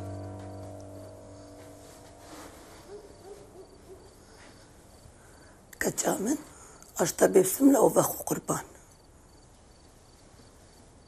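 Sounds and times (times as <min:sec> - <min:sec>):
soft low hooting: 0:00.0 - 0:05.6.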